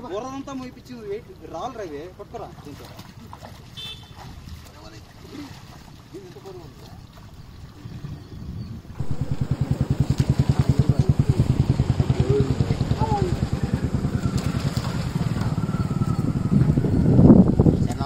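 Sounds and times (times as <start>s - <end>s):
people's voices: 9.0s - 16.8s
small engine idling: 9.0s - 17.1s.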